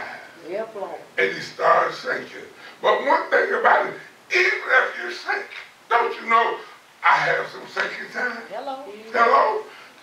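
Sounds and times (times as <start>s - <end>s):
man preaching: 0.0s - 0.3s, 1.2s - 9.8s.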